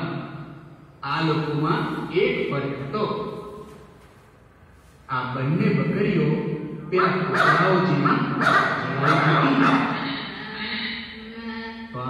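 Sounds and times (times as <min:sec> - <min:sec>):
cartoon dogs barking and snarling: 0:07.3 - 0:10.3.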